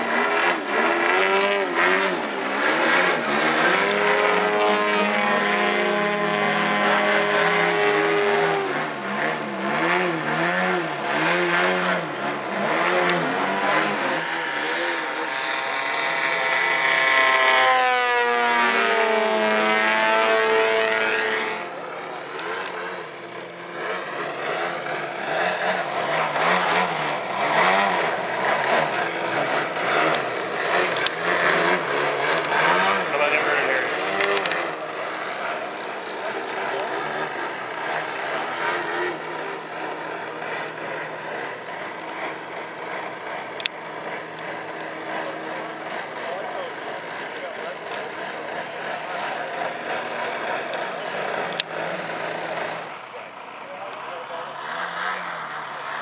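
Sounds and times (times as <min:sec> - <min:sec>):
model plane engines revving: 0:00.0 - 0:56.0.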